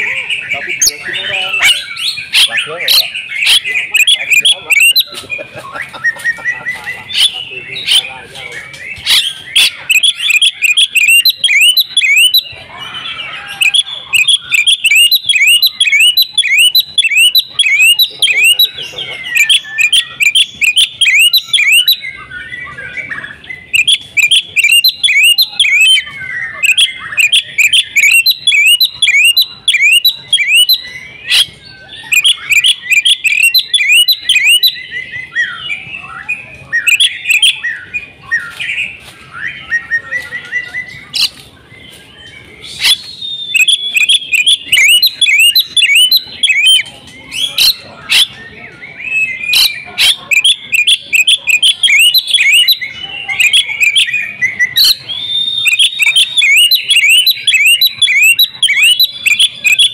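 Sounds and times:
bird singing whistled notes: 0.0 - 59.9.

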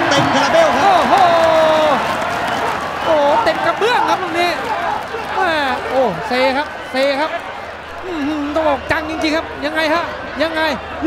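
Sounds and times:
applause: 0.0 - 11.0
crowd noise: 0.0 - 11.0.

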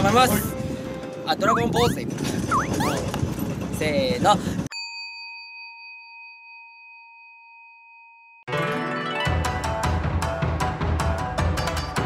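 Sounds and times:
struck bell ringing: 4.7 - 8.5.

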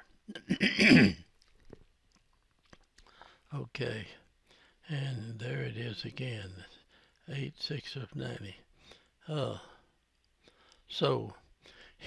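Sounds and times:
man clearing his throat: 0.3 - 1.2.

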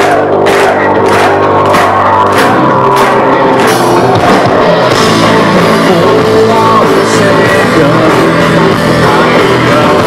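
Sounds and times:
metal band playing loudly: 0.0 - 10.0.

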